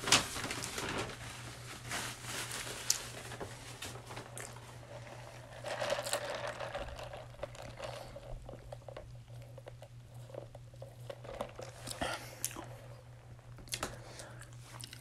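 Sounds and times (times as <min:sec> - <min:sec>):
drinking through a straw: 0:05.0 - 0:12.7
swallowing: 0:11.6 - 0:12.9.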